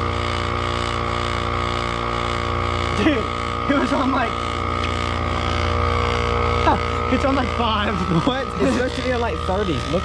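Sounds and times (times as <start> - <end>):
electric tire inflator motor hum: 0.0 - 10.0.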